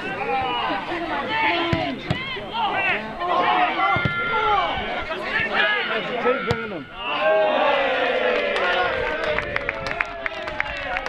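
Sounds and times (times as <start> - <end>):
people shouting: 0.0 - 9.0.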